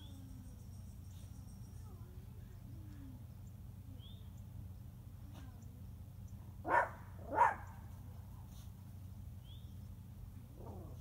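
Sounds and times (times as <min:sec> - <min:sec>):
low background hum: 0:00.0 - 0:11.0
dog barking: 0:06.6 - 0:07.7.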